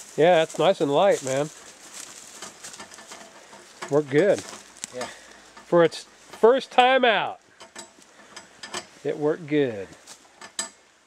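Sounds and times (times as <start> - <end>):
faint outdoor background noise: 0.0 - 11.0
man talking: 0.1 - 1.6, 3.8 - 7.4, 9.0 - 10.0.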